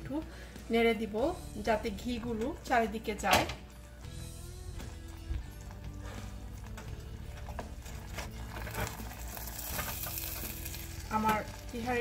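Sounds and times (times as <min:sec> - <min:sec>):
wooden spatula scraping and knocking: 0:06.0 - 0:11.5
rice and meat sizzling in a pot: 0:07.3 - 0:12.0.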